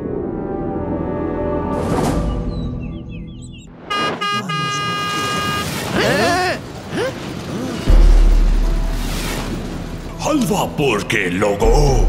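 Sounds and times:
cartoon horn toots: 3.9 - 6.6.

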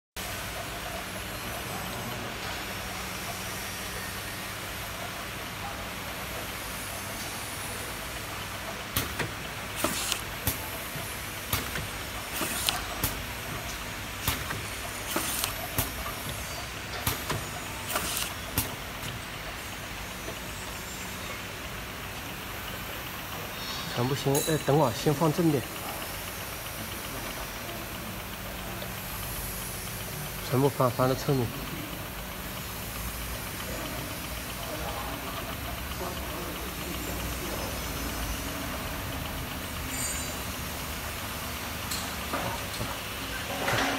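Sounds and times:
machine motor and conveyor hum: 0.2 - 43.9.

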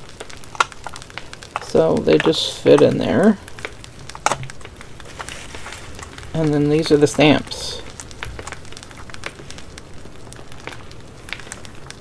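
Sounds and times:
plastic case click: 4.2 - 4.6.

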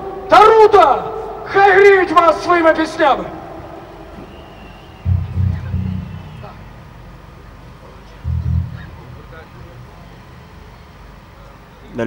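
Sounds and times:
faint live band music: 5.0 - 7.2, 8.2 - 11.1
loud low thumps: 5.0 - 7.2, 8.2 - 11.1.

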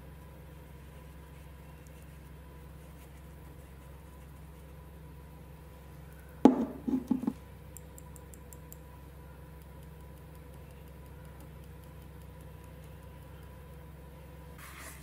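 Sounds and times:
knocks on wooden tabletop: 6.5 - 7.4.

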